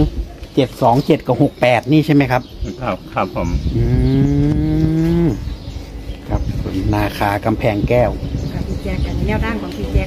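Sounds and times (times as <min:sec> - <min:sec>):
man humming mmm: 0:03.6 - 0:05.5.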